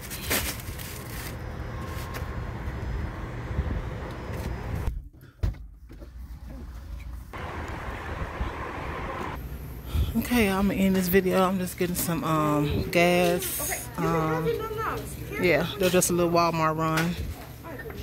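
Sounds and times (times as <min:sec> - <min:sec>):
parking lot background noise: 0:00.0 - 0:18.0.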